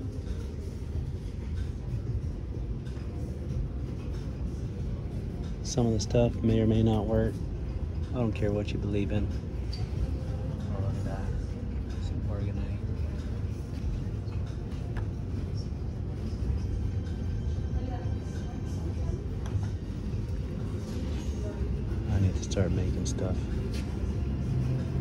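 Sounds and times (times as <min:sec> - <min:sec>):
background music: 0:00.0 - 0:25.0
low room rumble: 0:00.0 - 0:25.0.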